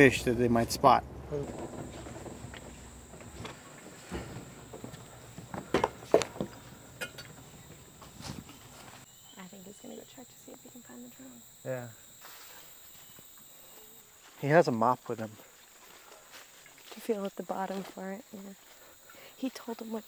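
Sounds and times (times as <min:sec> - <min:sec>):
insects droning: 0:00.0 - 0:20.0
footsteps and knocks on jetty: 0:01.4 - 0:09.0.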